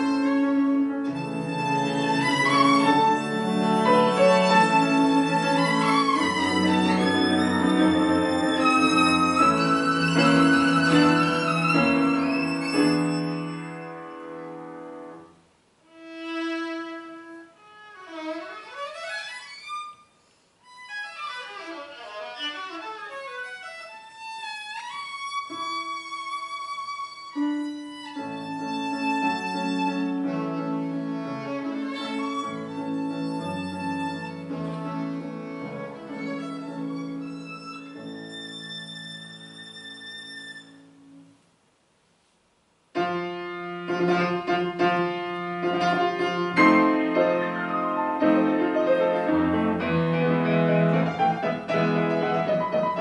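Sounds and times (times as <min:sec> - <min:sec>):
violin playing: 0:00.0 - 0:15.2, 0:15.8 - 0:41.3, 0:43.0 - 0:53.0
piano accompaniment: 0:00.0 - 0:17.5, 0:25.2 - 0:41.4, 0:43.0 - 0:53.0.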